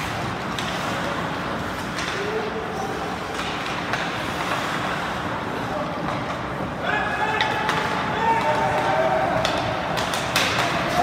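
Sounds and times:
skates on ice: 0:00.0 - 0:11.0
stick striking puck: 0:07.4 - 0:11.0.

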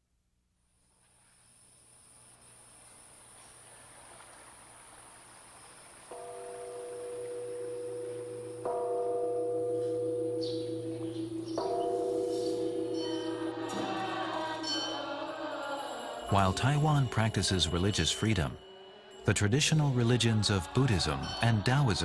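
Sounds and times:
soft rushing hiss: 0:00.6 - 0:08.6.

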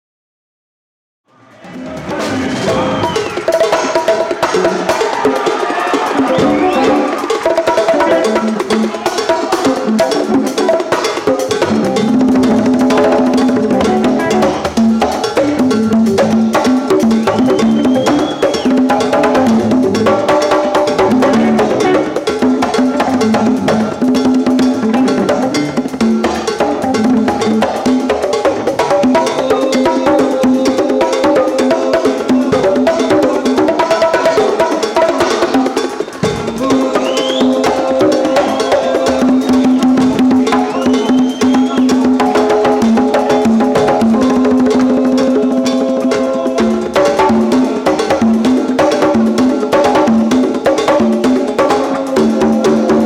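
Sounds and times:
congas played by hand: 0:01.6 - 0:53.0.

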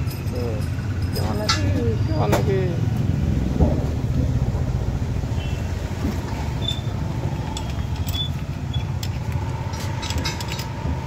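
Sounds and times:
spanner ticking on metal bolts: 0:06.6 - 0:11.0.

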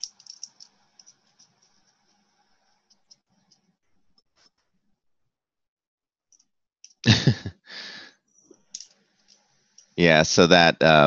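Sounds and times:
soft breath: 0:07.7 - 0:08.2.

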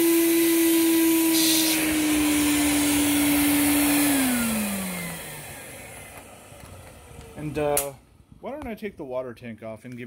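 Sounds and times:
vacuum motor winding down: 0:00.0 - 0:08.3.

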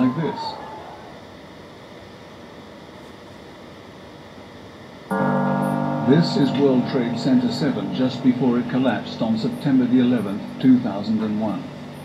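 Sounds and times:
held keyboard chord: 0:05.1 - 0:12.0.

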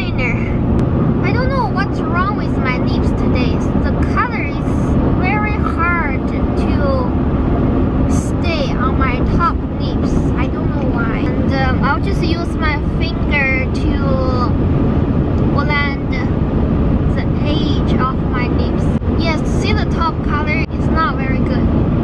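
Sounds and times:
high voice gliding up and down: 0:00.0 - 0:07.2, 0:08.1 - 0:14.6, 0:15.4 - 0:21.8
car cabin road and engine noise: 0:00.0 - 0:22.0.

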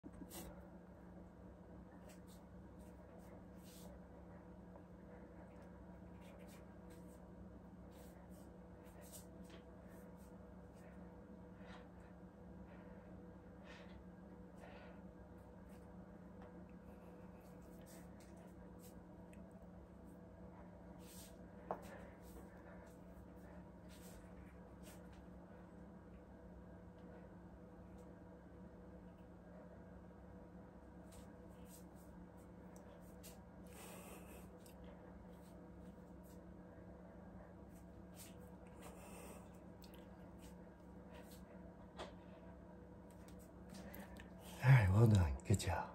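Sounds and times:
low steady hum: 0:00.0 - 0:45.9.

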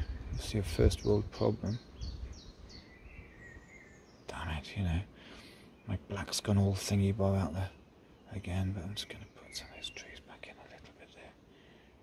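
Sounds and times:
birdsong chirps and whistle: 0:00.0 - 0:11.9.

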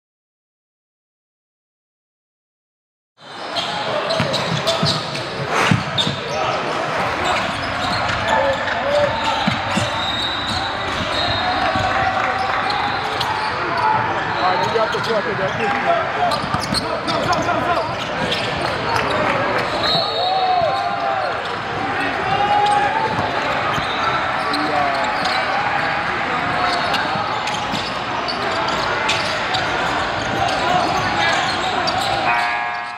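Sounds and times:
crowd and player chatter: 0:03.2 - 0:32.9
echoing hubbub of voices: 0:03.2 - 0:32.9
shoe squeaks: 0:03.3 - 0:21.6, 0:22.4 - 0:32.9.

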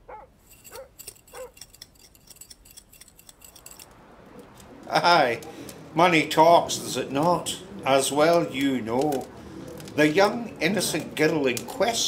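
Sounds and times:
animal whining: 0:00.0 - 0:01.6.

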